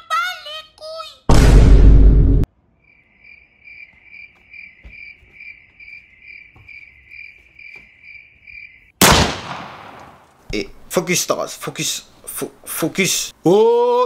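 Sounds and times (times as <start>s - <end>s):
cricket chirping: 2.6s - 9.0s.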